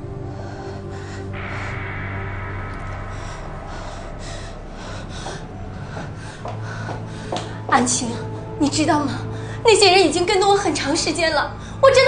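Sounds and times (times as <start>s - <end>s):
woman breathing heavily: 0.0s - 8.6s.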